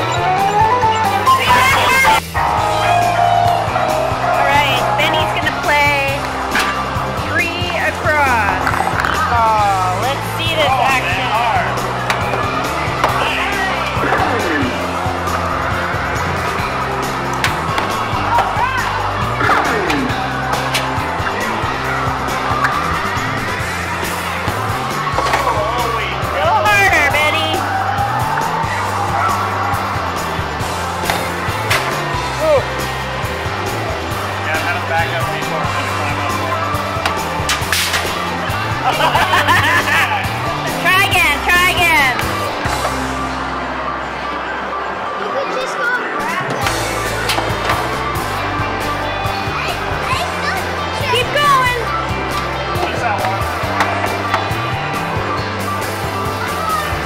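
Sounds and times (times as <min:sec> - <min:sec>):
electronic game sounds: 0:00.0 - 0:03.5
loud arcade music: 0:00.0 - 0:45.1
rubber balls rolling and bouncing: 0:06.2 - 0:09.7
balls knocking against rings: 0:08.5 - 0:09.3
balls rolling up a lane: 0:08.5 - 0:09.4.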